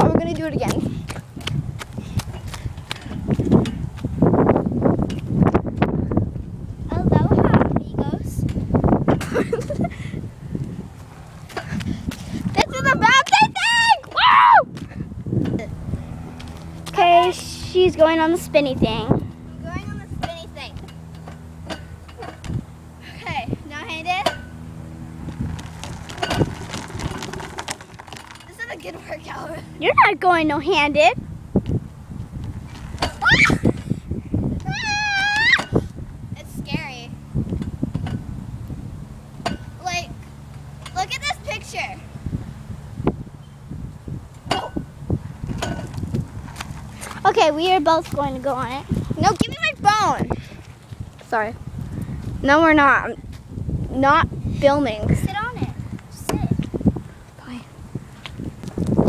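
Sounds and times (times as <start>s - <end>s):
steady low hum: 0.0s - 59.0s
phone handling rumble: 19.2s - 29.9s
footsteps crunching on mulch: 25.1s - 28.6s.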